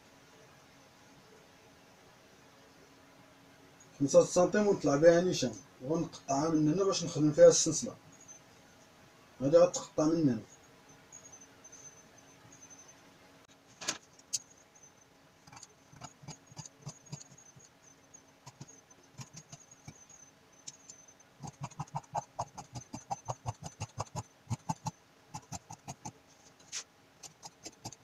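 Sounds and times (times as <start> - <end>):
light ticks and scrapes on fabric: 25.4 - 28.0.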